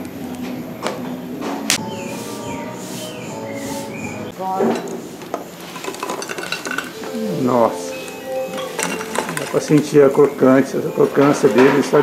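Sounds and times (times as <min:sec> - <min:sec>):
fried dough balls clattering: 0:04.4 - 0:12.0
metal and glass clinking: 0:04.6 - 0:12.0.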